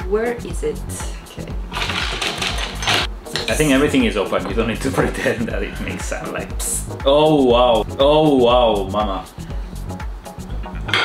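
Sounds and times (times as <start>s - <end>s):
background music with beat: 0.0s - 11.0s
glass bottles clinking: 1.7s - 3.5s.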